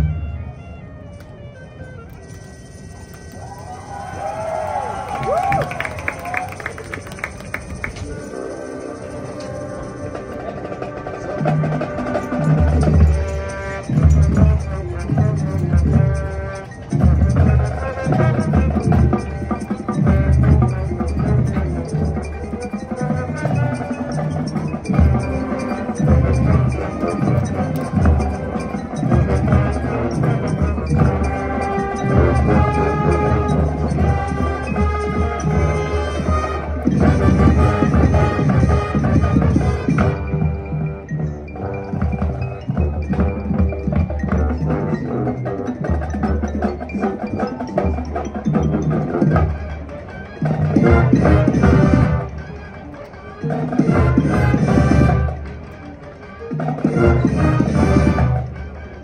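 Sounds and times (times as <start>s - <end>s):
marching band winds: 0.0s - 59.0s
drums: 3.4s - 59.0s
mallet percussion: 5.3s - 59.0s.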